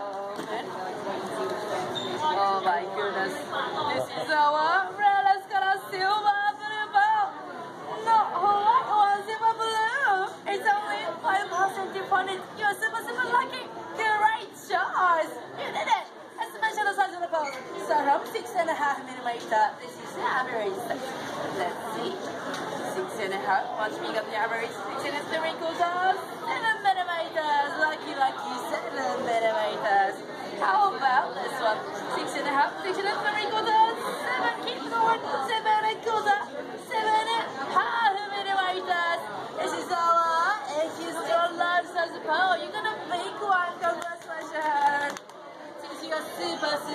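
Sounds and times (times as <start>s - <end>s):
several voices chattering: 0.0s - 46.9s.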